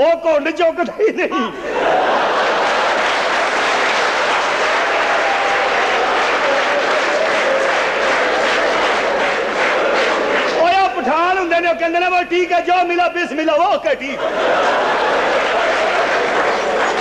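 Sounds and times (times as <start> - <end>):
audience applauding: 1.8 - 11.0, 14.3 - 17.0
faint crowd voices: 15.0 - 17.0.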